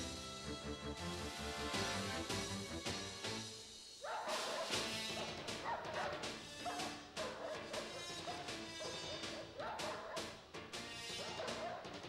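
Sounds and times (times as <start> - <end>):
dog barking: 4.0 - 10.4, 11.2 - 11.9.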